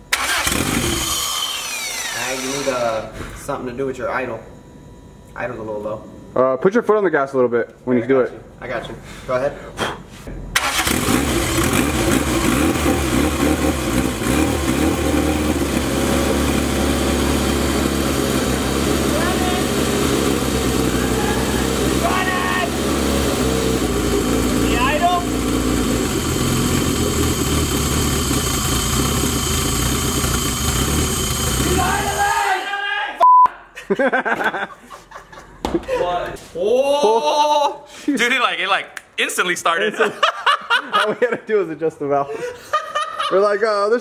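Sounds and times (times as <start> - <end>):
car engine idling: 10.6 - 32.4.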